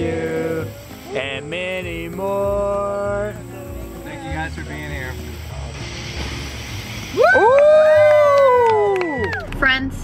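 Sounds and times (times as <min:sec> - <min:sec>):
people whooping: 0:07.1 - 0:09.7
people clapping: 0:07.3 - 0:10.0.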